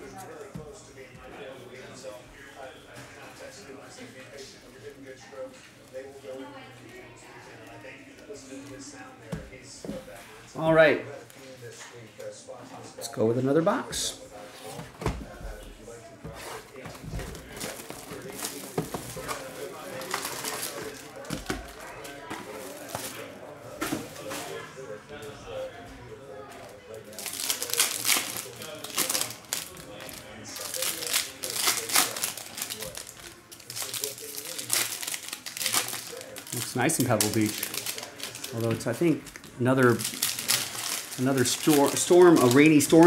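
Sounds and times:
foil wrapper crinkling and tearing: 17.4 - 21.8, 27.1 - 43.0.

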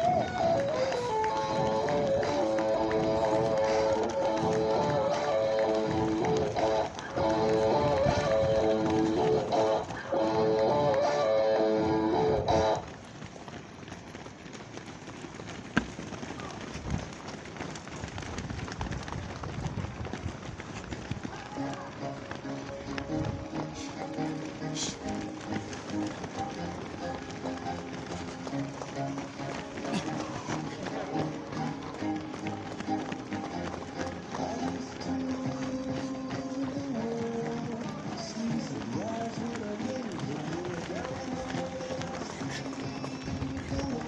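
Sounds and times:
voices: 0.0 - 12.9, 20.7 - 44.0
runners' shoes pattering on asphalt: 0.0 - 44.0.

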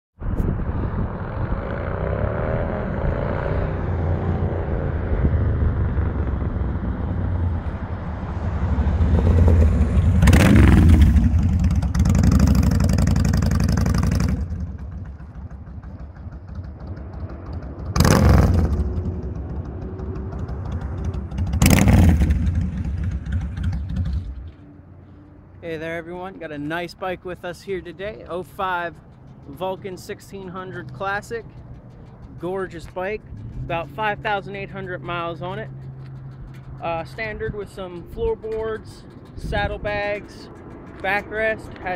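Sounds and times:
motorcycle engine rumbling: 0.2 - 41.9.

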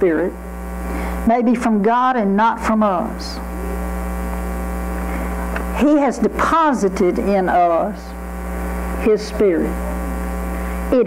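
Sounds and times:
woman speaking: 0.0 - 0.4, 1.2 - 3.5, 5.8 - 8.2, 9.0 - 10.0
electrical mains hum: 0.0 - 11.0.

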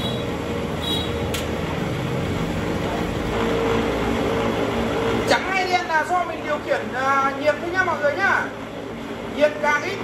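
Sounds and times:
steady tone: 0.0 - 5.5
cotton candy machine humming: 0.0 - 10.0.

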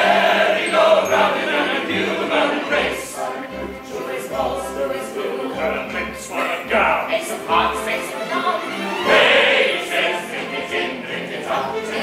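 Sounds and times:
musical cast singing chorus: 0.0 - 12.0
stage show music: 0.0 - 12.0.

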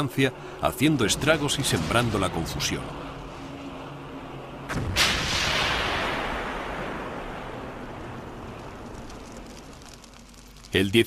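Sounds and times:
bomb explosion blast: 4.7 - 10.6.

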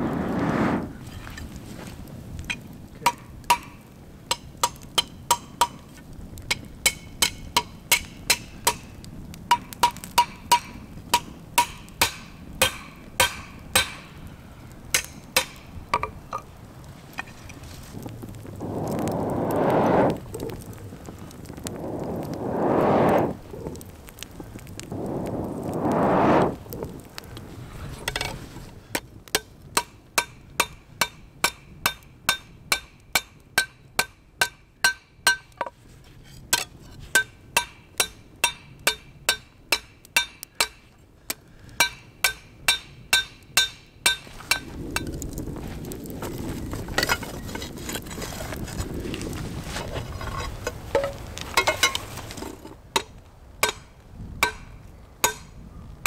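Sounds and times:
bellows whooshing: 0.0 - 1.0, 18.4 - 23.9, 24.7 - 27.0
forge fire rushing: 0.0 - 3.0, 15.7 - 29.3, 44.2 - 52.6.

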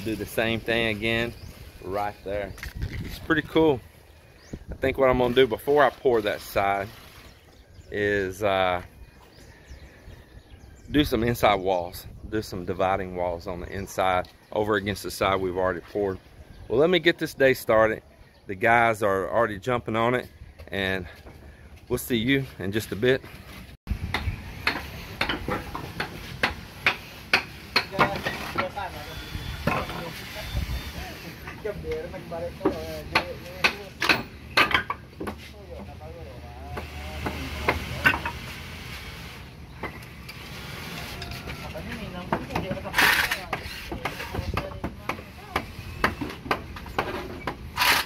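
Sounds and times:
hammer strikes on wood: 24.1 - 28.2, 43.5 - 47.6.

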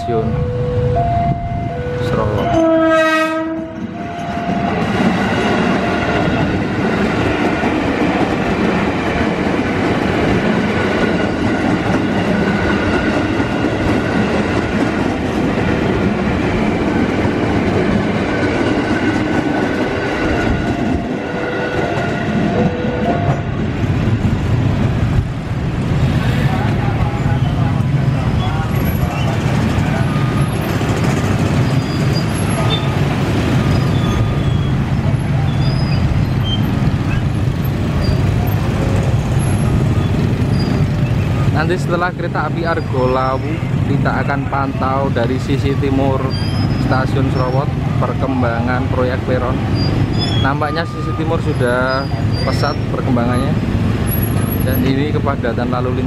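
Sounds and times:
electric trains passing: 0.0 - 56.0
steel wheels clattering on rails: 27.8 - 42.0, 49.4 - 55.2.

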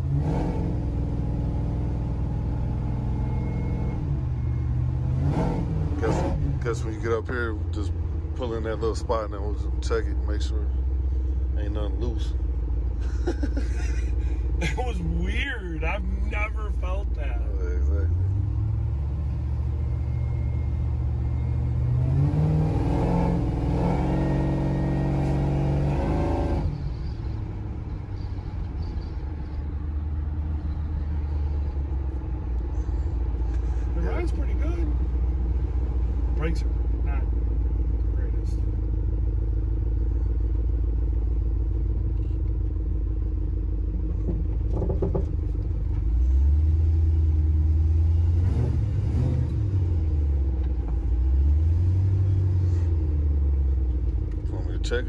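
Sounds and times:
pickup engine revving: 4.9 - 7.1, 18.1 - 27.0, 44.0 - 53.0.

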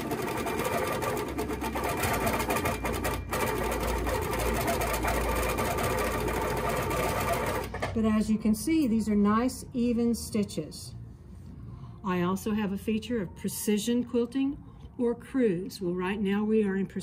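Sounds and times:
quilting machine stitching: 0.0 - 7.9.

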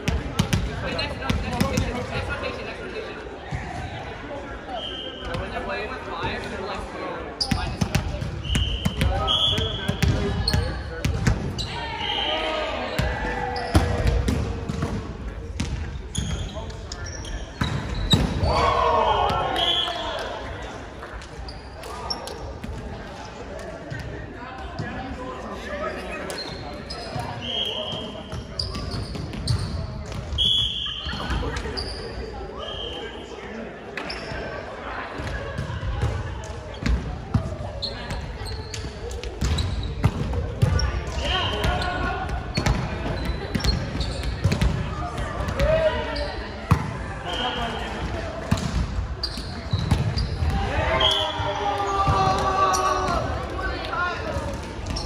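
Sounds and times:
sneakers squeaking on floor: 7.4 - 12.4, 15.6 - 18.6, 21.4 - 22.6, 25.9 - 33.3, 34.0 - 47.9, 48.5 - 53.2, 54.4 - 55.0.

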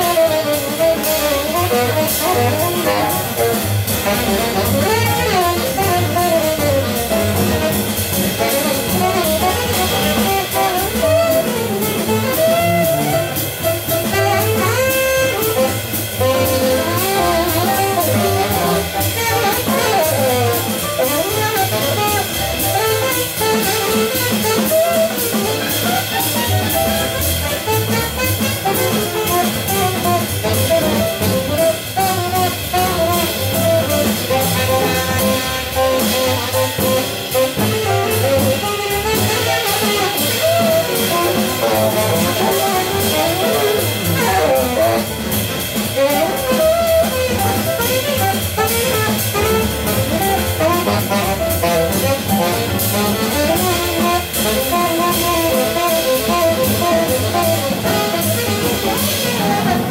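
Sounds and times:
double bass: 0.0 - 59.9
drum kit cymbals and drums: 0.0 - 59.9
tenor saxophone melody: 0.0 - 59.9.

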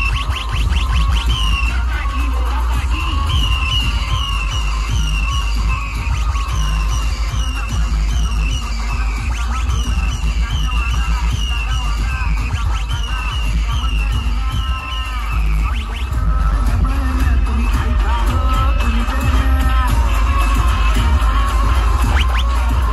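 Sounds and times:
loud electronic dance music: 0.0 - 22.9.

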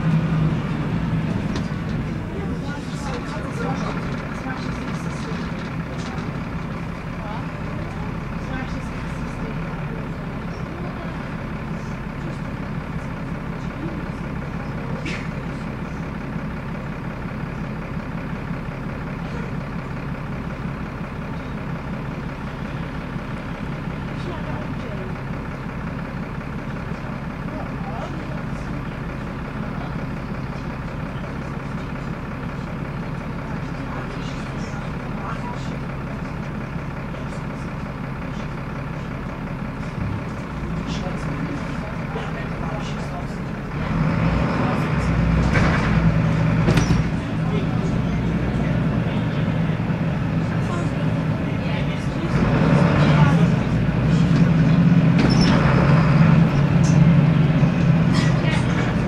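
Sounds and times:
diesel bus engine humming: 0.0 - 59.0.

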